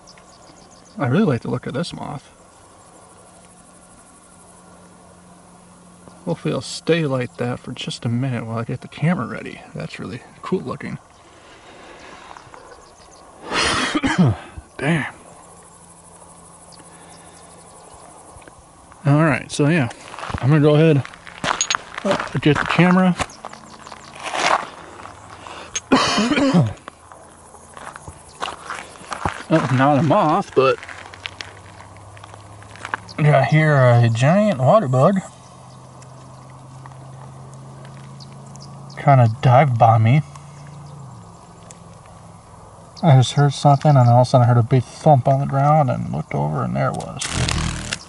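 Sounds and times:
faint insects chirping: 0.0 - 48.0
low steady background hiss: 0.0 - 48.0
steady low hum: 0.0 - 48.0.

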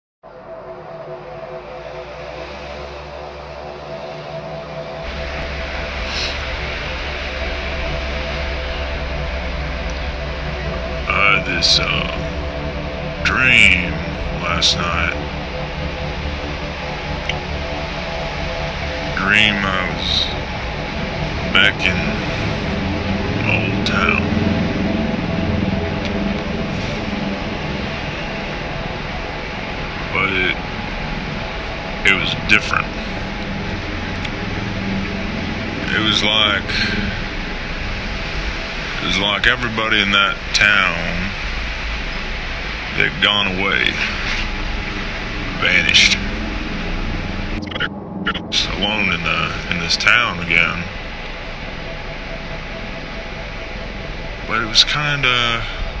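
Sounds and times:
ambient music low notes: 0.2 - 56.0
low steady drone: 0.2 - 56.0
steady hiss: 5.1 - 56.0.

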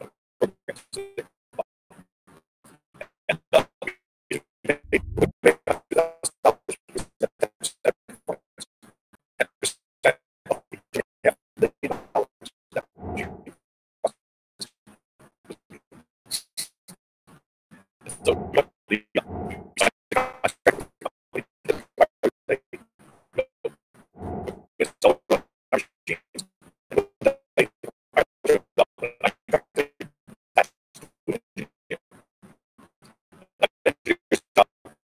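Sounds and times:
man's choppy voice on video call: 4.7 - 8.2, 9.4 - 13.5, 18.1 - 22.7, 24.5 - 26.2, 27.2 - 30.0, 30.6 - 32.0, 33.6 - 34.7
person's voice breaking up: 4.9 - 5.3.

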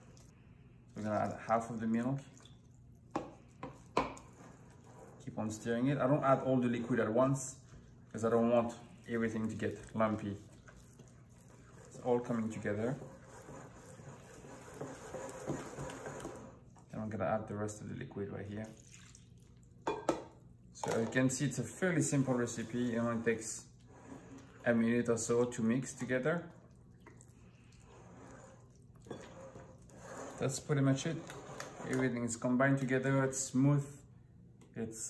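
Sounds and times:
batter stirred with a spatula: 0.0 - 20.0, 21.0 - 33.6
spoon stirring batter in glass bowl: 1.0 - 16.9.

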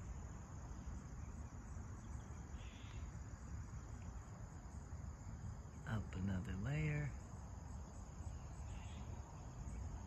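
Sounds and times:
insect chirring: 0.0 - 10.0.

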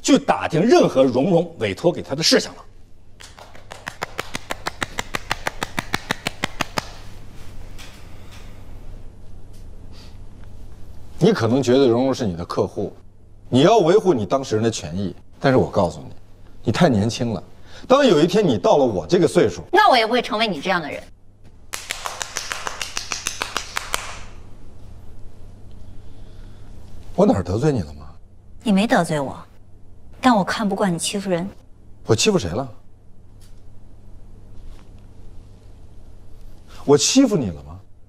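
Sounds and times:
person clapping hands quickly: 3.2 - 7.2, 21.7 - 24.4.

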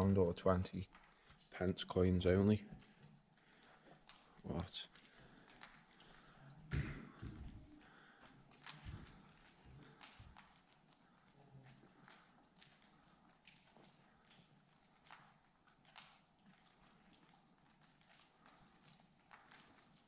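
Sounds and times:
faint footsteps in a hall: 0.0 - 20.0
taps and knocks on floor: 6.7 - 7.6.

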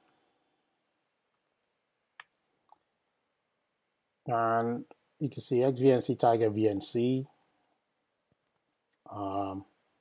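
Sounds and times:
computer keys clicking: 1.3 - 2.8.

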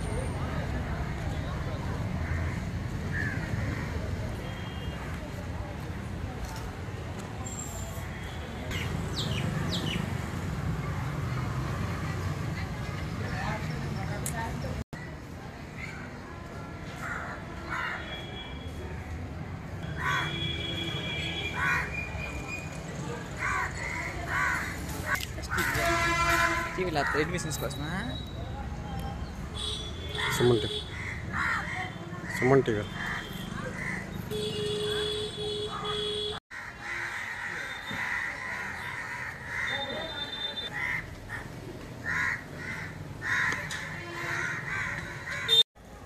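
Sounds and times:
crow cawing: 2.2 - 4.0, 19.8 - 20.4, 21.6 - 21.9, 23.4 - 24.8, 30.1 - 34.1, 36.5 - 45.6.

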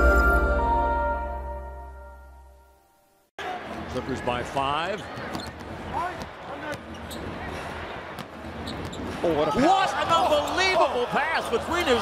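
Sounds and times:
arena crowd noise: 3.4 - 12.0.

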